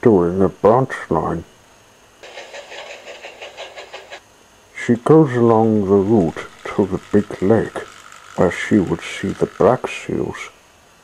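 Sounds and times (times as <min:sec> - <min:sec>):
steam locomotive chuffing: 0:02.2 - 0:09.9.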